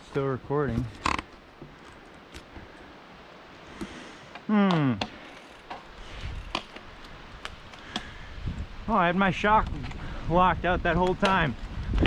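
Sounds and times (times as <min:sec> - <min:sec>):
bike knocking and rattling: 0:05.0 - 0:08.1.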